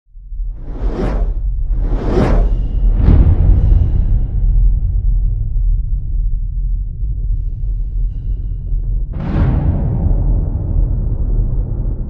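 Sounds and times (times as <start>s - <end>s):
steady deep rumble: 0.1s - 12.0s
whoosh sound effect: 0.6s - 3.1s.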